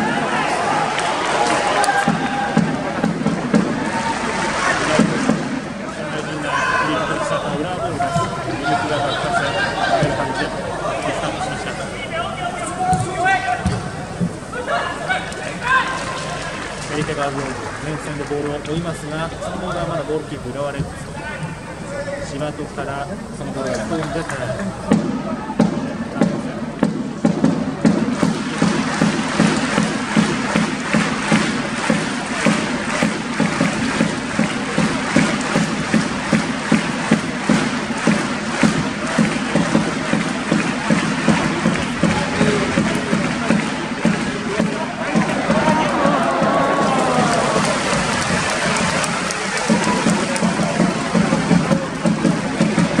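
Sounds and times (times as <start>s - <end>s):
crowd clapping in rhythm: 0.0s - 53.0s
crowd murmur: 0.0s - 53.0s.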